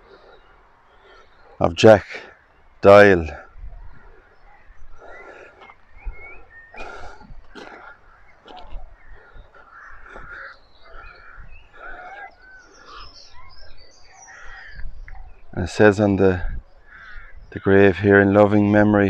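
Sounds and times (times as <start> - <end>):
birds calling: 0.0 - 19.0.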